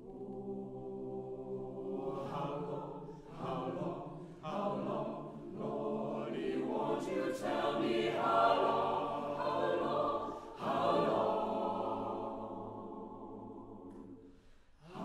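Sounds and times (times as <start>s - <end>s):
choir singing in harmony: 0.0s - 15.0s.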